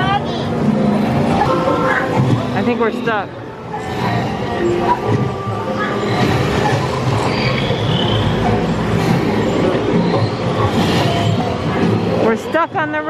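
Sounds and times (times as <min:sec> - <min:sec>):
murmur of voices: 0:00.0 - 0:13.0.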